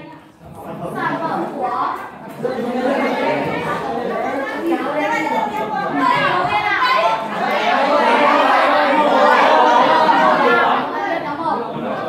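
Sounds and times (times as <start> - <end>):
classroom chatter: 0.0 - 12.0.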